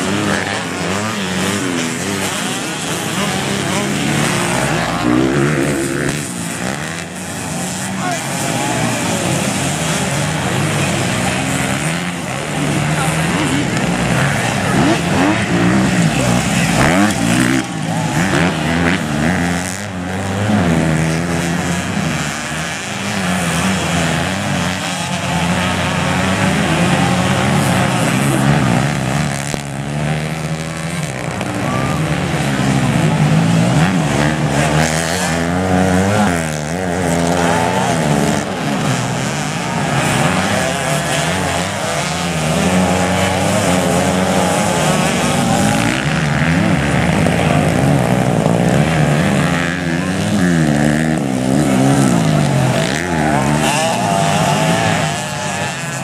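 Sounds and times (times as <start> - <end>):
dirt bike engines racing: 0.0 - 56.0.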